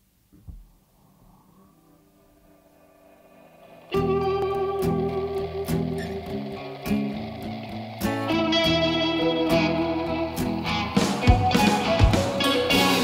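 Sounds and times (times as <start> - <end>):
indie rock electric guitar: 1.0 - 13.0.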